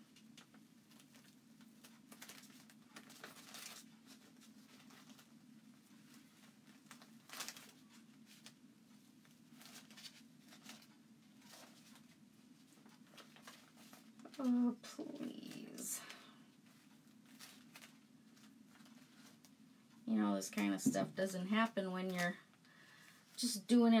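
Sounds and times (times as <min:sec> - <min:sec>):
low room hum: 0:00.0 - 0:24.0
sheet crinkling as peeled: 0:00.1 - 0:20.0.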